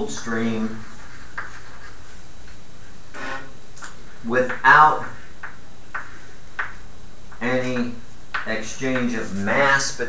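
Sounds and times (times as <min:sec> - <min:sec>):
room hiss: 0:00.0 - 0:10.0
chalk striking a blackboard: 0:00.8 - 0:02.0, 0:04.5 - 0:06.8.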